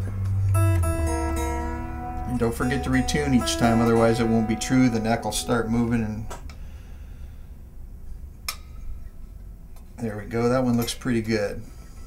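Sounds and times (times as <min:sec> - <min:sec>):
steady low hum: 0:00.0 - 0:09.8.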